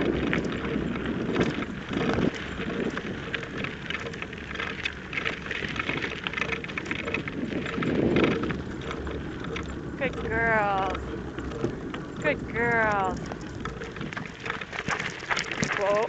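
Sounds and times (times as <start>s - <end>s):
gravel crunching under wheels: 0.0s - 16.0s
wind rumbling on microphone: 0.0s - 16.0s.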